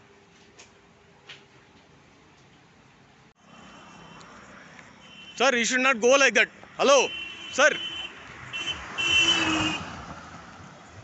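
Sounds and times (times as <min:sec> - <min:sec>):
road vehicle passing: 0:03.4 - 0:11.0.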